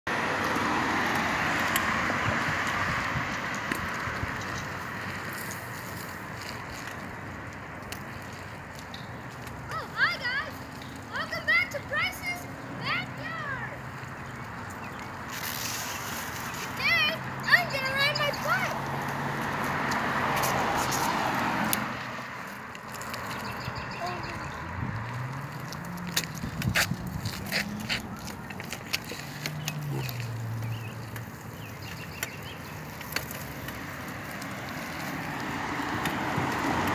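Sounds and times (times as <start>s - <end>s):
car passing: 0.1s - 36.9s
bicycle tyres hissing on concrete: 0.4s - 36.9s
child's voice: 9.7s - 13.9s, 16.8s - 18.8s, 23.9s - 24.6s.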